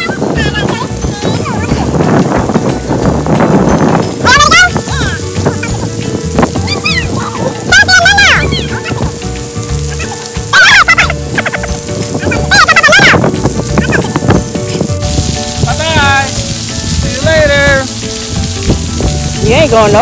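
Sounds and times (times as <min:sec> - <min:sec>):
children squealing and calling: 0:00.0 - 0:02.1, 0:03.6 - 0:14.6
water jets spraying on concrete: 0:00.0 - 0:20.0.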